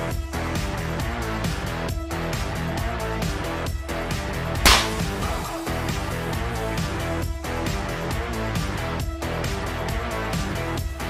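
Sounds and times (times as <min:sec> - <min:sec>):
sharp crack: 0:04.6 - 0:05.9.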